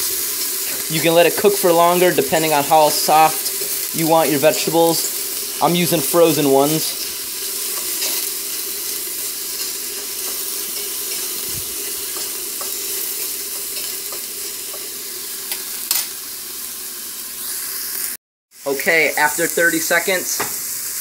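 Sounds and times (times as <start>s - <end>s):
vegetables sizzling in oil: 0.0s - 21.0s.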